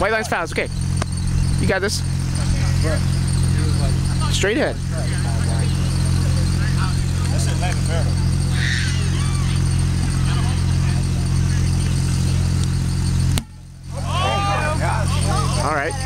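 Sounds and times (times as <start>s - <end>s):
low-pitched hum: 0.0s - 16.0s.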